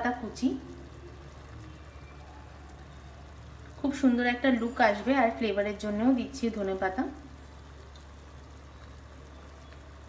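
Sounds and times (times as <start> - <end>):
gravy simmering with sizzle: 0.0 - 10.0
low hum: 0.0 - 10.0.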